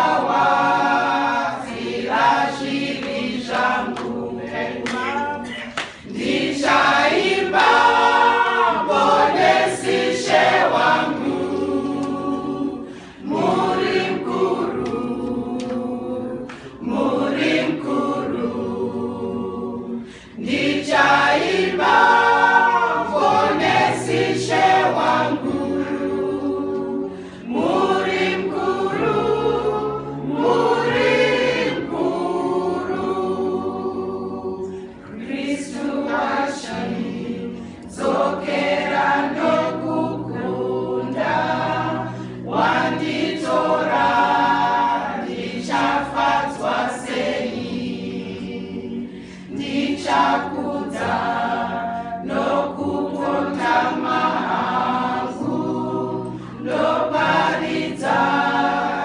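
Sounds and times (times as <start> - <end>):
women's choir singing: 0.0 - 59.0.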